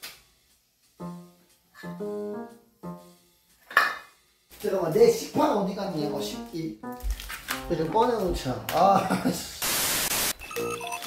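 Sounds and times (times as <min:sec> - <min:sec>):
electric piano jingle: 0:01.0 - 0:03.2
burst of noise: 0:09.6 - 0:10.4.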